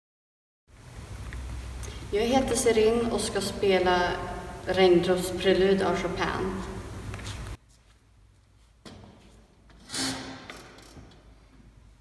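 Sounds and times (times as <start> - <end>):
footsteps: 6.6 - 9.8.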